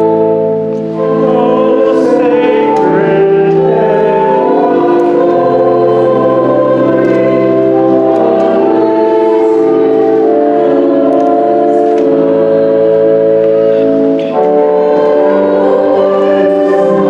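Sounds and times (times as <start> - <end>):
choir and congregation singing: 0.0 - 17.0
organ playing held chords: 0.0 - 17.0.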